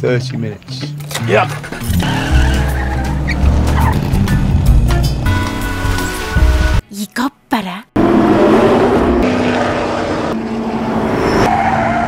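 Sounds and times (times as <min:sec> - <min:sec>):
sports car engine revving: 0:01.6 - 0:06.6, 0:08.0 - 0:11.2.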